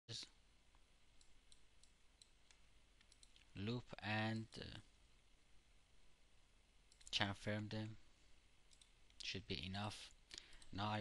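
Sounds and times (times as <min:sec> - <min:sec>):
faint mouse clicks: 0:00.7 - 0:03.6, 0:06.9 - 0:07.3, 0:08.7 - 0:09.4, 0:10.3 - 0:10.8.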